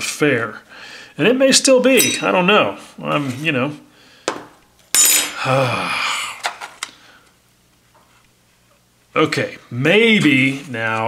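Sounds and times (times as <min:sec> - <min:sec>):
metal tweezers clattering: 0:01.9 - 0:02.4.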